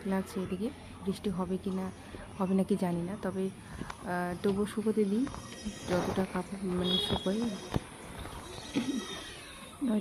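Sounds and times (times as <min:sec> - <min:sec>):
woman speaking: 0:00.0 - 0:07.8, 0:09.8 - 0:10.0.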